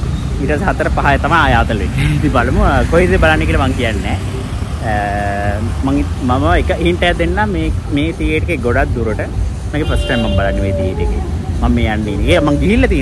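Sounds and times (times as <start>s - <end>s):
low rumble of road traffic: 0.0s - 13.0s
man talking: 0.4s - 13.0s.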